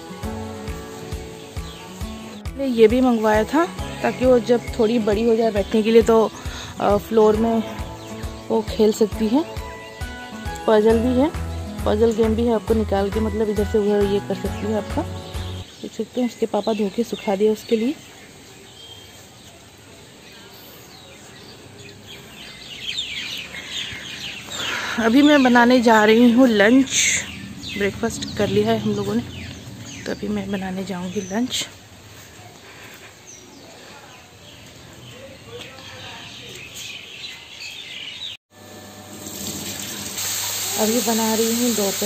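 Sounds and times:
birds chirping: 0:00.0 - 0:38.4
faint outdoor hush: 0:15.7 - 0:38.0
vegetables sizzling under a lid: 0:38.6 - 0:42.0.

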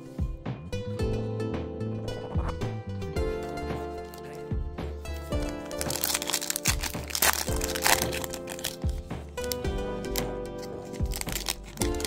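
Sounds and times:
background music: 0:00.0 - 0:12.0
foil wrapper tearing and crinkling: 0:05.1 - 0:12.0.

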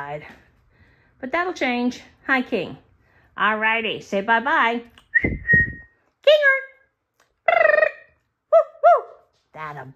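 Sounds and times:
short high whistle: 0:05.1 - 0:05.9.

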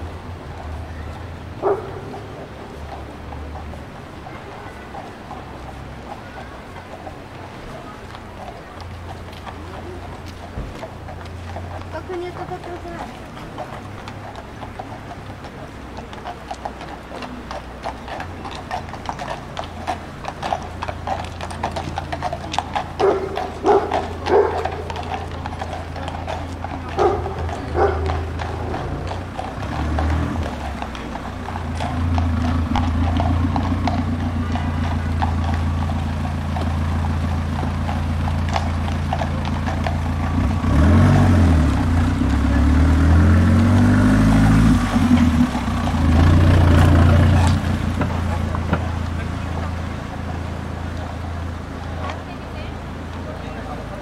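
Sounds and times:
car passing: 0:00.0 - 0:54.0
horse hooves clip-clopping on pavement: 0:00.0 - 0:54.0
low engine hum: 0:07.4 - 0:54.0.

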